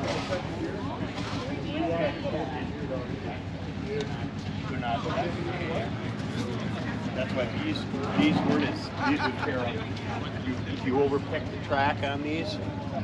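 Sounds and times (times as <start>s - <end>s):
people talking: 0.0s - 13.0s.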